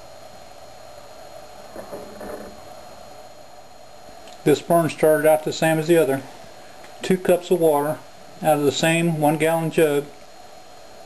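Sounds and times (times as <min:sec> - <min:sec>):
alcohol stove burning: 0:00.0 - 0:11.0.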